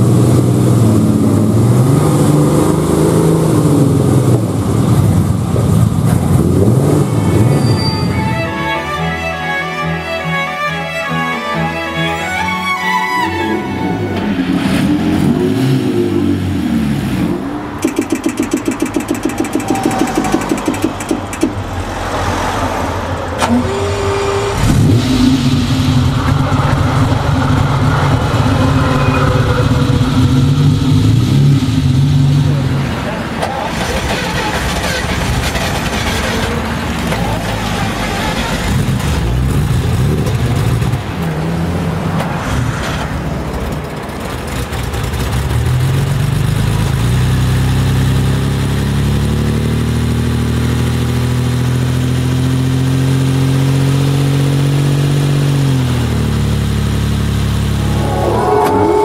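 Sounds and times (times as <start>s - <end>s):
car engine revving and idling: 0.0s - 8.8s, 13.3s - 59.0s.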